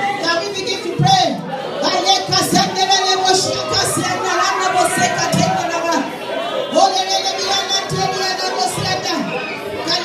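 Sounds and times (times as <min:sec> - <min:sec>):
congregation praying aloud: 0:00.0 - 0:10.0.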